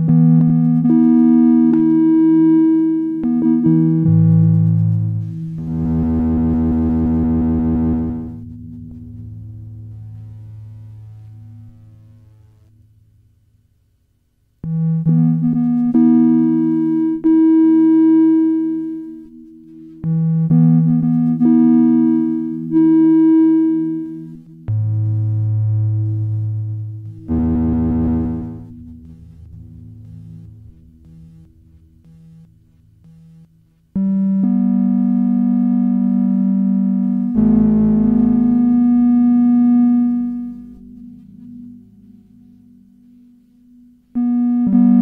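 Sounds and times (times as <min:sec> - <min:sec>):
synthesizer held chord: 0:00.0 - 0:13.4, 0:14.6 - 0:45.0.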